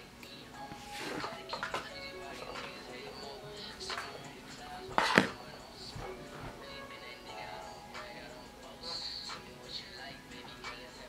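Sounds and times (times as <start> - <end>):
rapping over a beat: 0.2 - 11.0.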